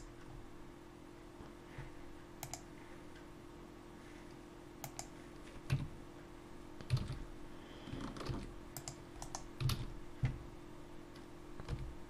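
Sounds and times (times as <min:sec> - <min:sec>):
computer keyboard keystrokes: 0:02.4 - 0:02.7, 0:04.8 - 0:05.1, 0:06.8 - 0:07.2, 0:07.9 - 0:10.4
mouse clicks: 0:02.4 - 0:02.7, 0:04.8 - 0:05.1, 0:08.8 - 0:09.5.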